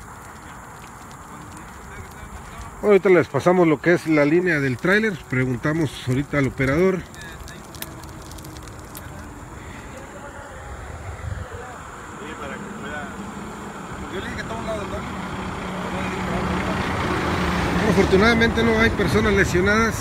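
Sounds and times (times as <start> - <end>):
highway traffic: 0.0 - 20.0
truck diesel engine hum: 0.0 - 20.0.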